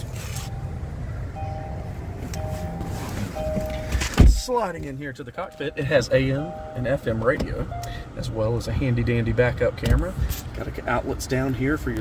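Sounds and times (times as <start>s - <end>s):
low steady rumble: 0.0s - 12.0s
two-note car warning chime: 0.3s - 8.6s.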